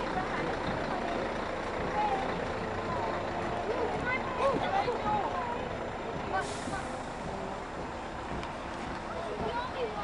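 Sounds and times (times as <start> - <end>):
lorry engine rumble: 0.0 - 10.0
people's voices: 0.0 - 10.0.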